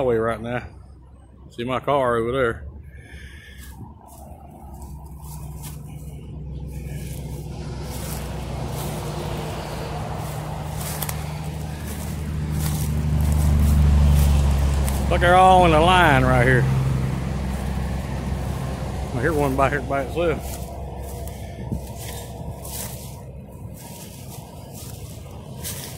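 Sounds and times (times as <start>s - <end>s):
highway traffic passing: 0.0s - 25.9s
vehicle approaching: 0.0s - 25.9s.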